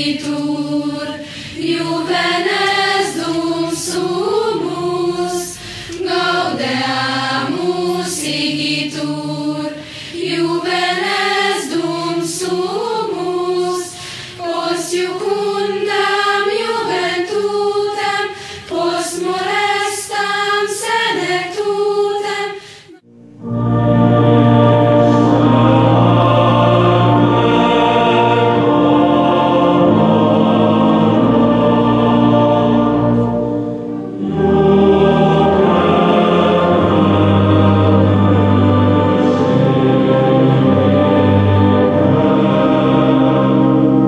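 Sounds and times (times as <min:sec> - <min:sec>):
choir singing slow song: 0:00.0 - 0:44.0.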